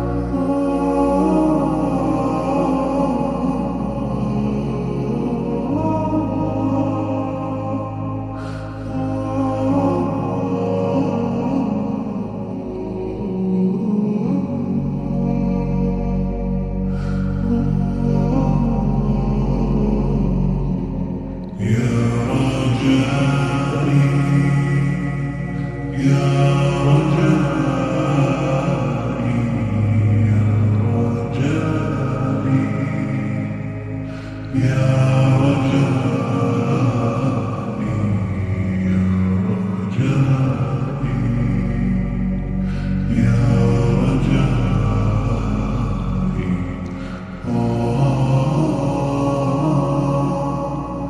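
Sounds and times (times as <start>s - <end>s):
layered voices chanting chords: 0.0s - 51.0s
low vocal drone: 0.0s - 51.0s
breathy rush: 33.9s - 34.6s, 42.4s - 43.2s, 46.2s - 48.0s.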